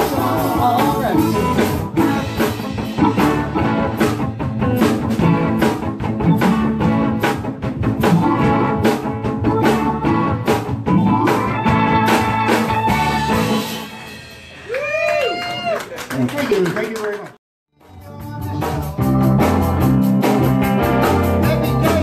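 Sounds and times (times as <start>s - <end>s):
live band playing instrumental: 0.0s - 14.8s, 17.8s - 22.0s
drum kit steady beat: 0.0s - 15.7s, 17.8s - 22.0s.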